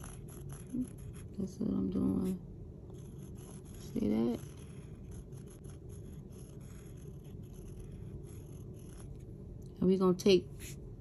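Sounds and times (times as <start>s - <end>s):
paintbrush scratching on wood: 0.0s - 9.3s
low room hum: 0.0s - 11.0s.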